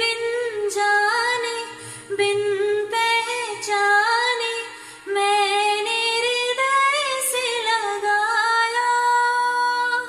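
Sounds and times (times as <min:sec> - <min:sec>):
woman singing softly: 0:00.0 - 0:10.0.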